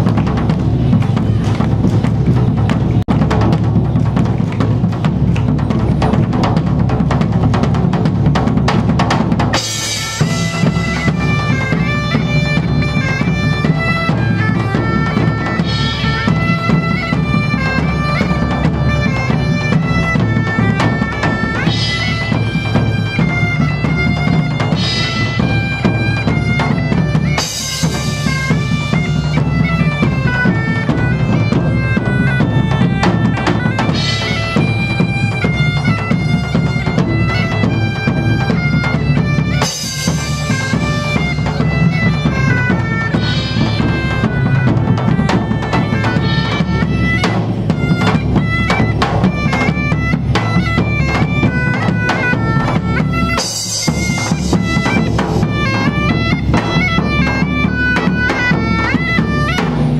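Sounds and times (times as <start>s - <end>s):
large drums beating: 0.0s - 59.9s
bagpipes playing a melody: 9.5s - 59.9s
cymbal crashes: 9.6s - 11.3s.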